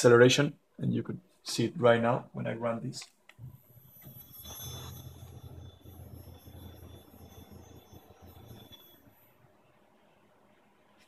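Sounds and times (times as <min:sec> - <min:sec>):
motor hum with high whine: 0:03.4 - 0:09.2.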